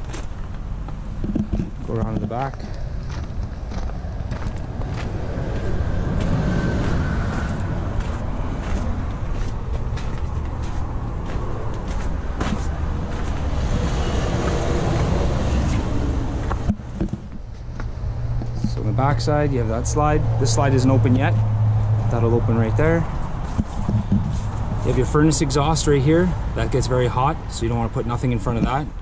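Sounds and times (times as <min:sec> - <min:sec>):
footsteps on gravel: 0:00.0 - 0:18.9
steady low rumble: 0:00.0 - 0:29.0.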